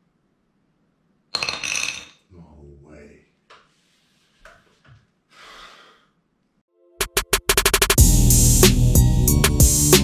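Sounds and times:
man breathing out: 5.3s - 6.2s.

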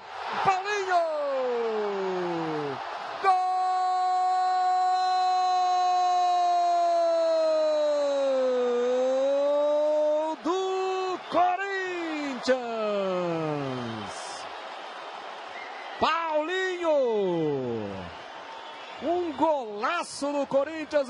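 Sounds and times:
commentator shouting goal cry: 0.3s - 14.4s.

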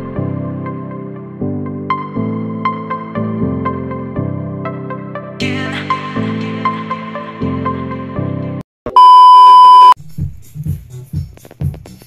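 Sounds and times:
music: 0.0s - 8.6s, 10.0s - 12.0s
steady electronic beep: 8.9s - 10.0s.

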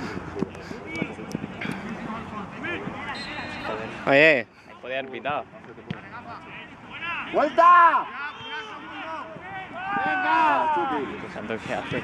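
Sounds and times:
footballers calling out: 0.0s - 12.0s.

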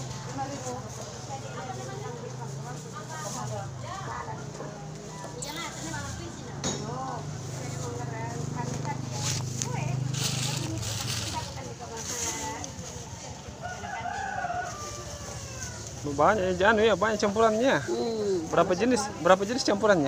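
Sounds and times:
plastic bag rustling: 7.6s - 13.2s
rooster crowing: 13.6s - 16.0s.

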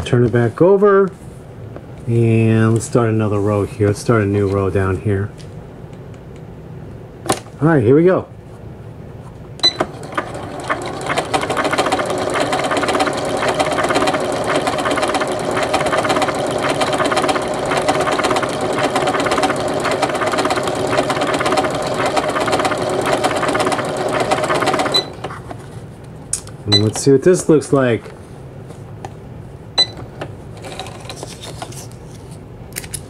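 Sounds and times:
sewing machine stitching: 9.8s - 25.4s.

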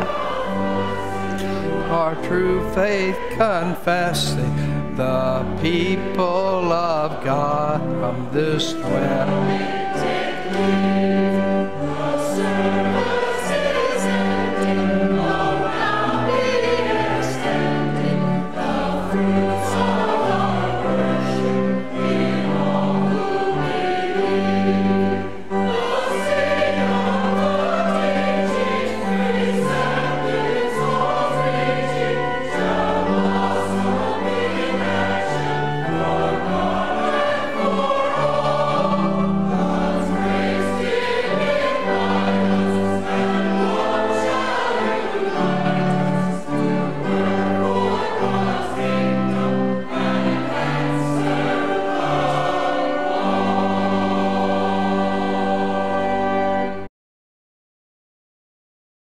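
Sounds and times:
choir singing a hymn: 0.0s - 56.9s.

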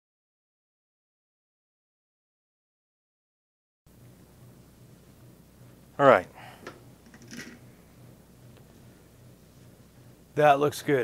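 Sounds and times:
faint low hum: 3.9s - 11.0s.

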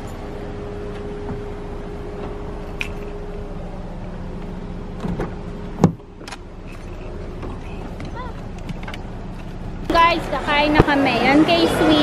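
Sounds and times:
steady low hum: 0.0s - 11.7s
car door thudding shut: 5.0s - 6.4s.

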